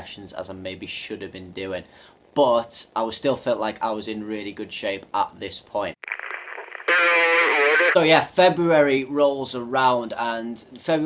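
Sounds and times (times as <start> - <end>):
voice over public address: 6.9 - 8.0.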